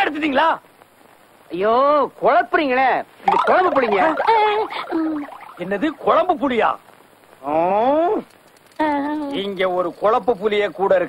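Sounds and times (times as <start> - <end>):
faint hiss: 0.0 - 11.0
person speaking: 3.2 - 6.6.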